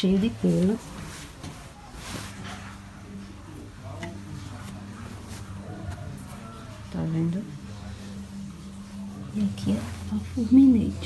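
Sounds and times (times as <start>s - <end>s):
faint voices: 0.0s - 11.0s
steady low hum: 0.0s - 11.0s.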